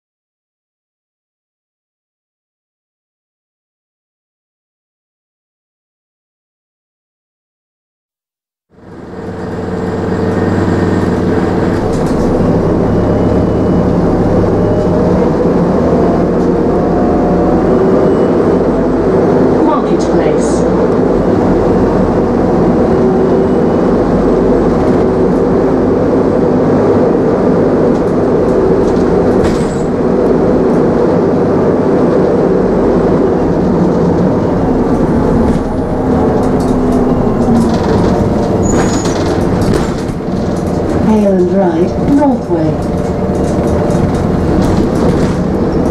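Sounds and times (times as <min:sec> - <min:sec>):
bus engine running: 0:08.7 - 0:45.9
road rumble: 0:08.7 - 0:45.9.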